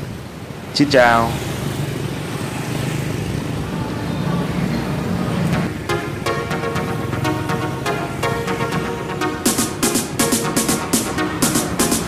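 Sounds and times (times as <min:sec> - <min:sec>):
motor scooters and cars passing: 0:00.0 - 0:08.1.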